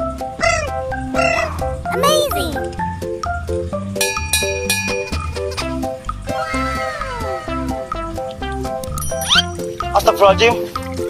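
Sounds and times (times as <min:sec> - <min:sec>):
music with bouncy beat: 0:00.0 - 0:06.3.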